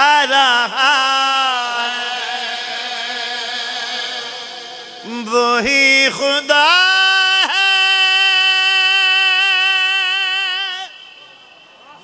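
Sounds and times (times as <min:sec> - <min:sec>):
man singing long high note: 0:00.0 - 0:12.0.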